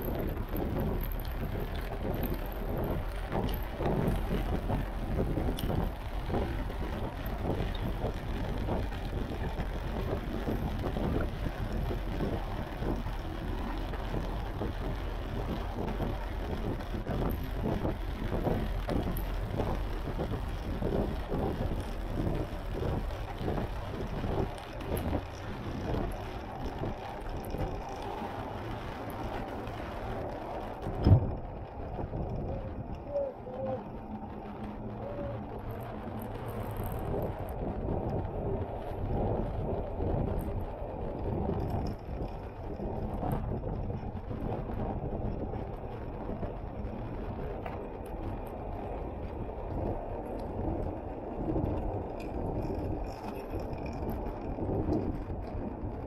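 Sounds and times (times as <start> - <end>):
tyres on wet road: 0.0 - 56.0
wind buffeting microphone: 0.0 - 56.0.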